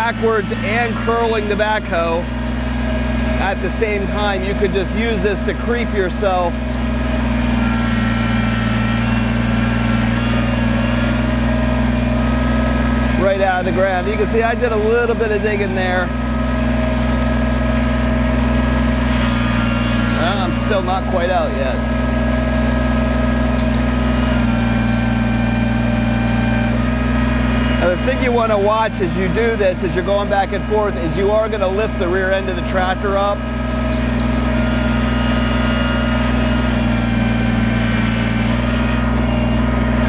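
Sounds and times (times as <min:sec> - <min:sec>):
thin steady whining: 0:00.0 - 0:40.0
tractor diesel engine running: 0:00.0 - 0:40.0.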